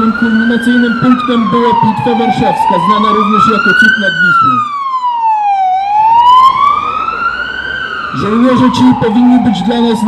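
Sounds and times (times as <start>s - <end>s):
emergency siren wailing: 0.0s - 10.0s.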